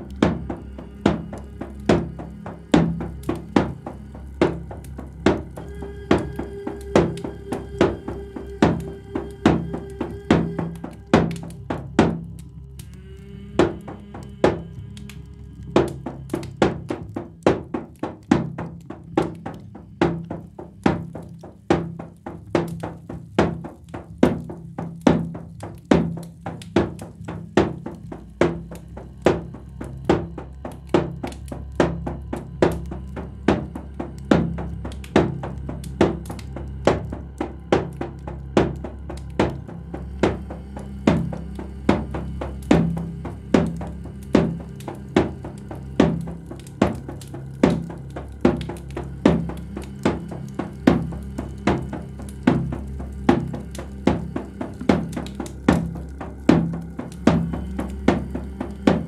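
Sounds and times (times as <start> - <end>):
drum strikes: 0.0 - 12.4, 15.8 - 59.0
low steady drone: 0.0 - 59.0.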